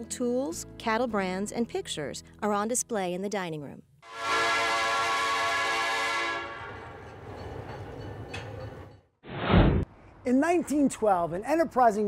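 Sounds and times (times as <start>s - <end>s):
train whistle blowing: 4.0s - 6.8s.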